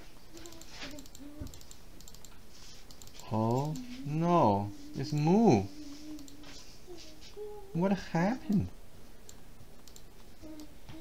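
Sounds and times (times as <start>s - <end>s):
person humming: 0.0s - 1.7s, 3.2s - 8.7s, 10.4s - 11.0s
keyboard and mouse clicks: 0.3s - 3.9s, 9.3s - 11.0s.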